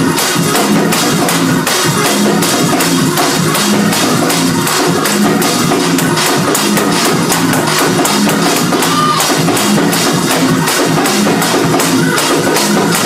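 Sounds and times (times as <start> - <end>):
church band playing gospel: 0.0 - 13.0.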